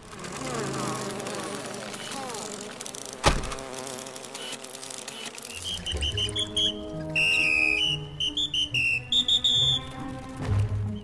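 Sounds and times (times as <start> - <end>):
high whistled notes: 5.6 - 10.1
low background music: 5.8 - 11.0.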